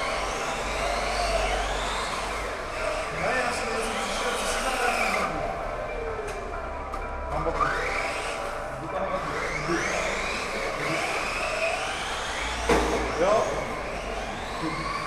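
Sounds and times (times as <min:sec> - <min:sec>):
model car motors whining: 0:00.0 - 0:15.0.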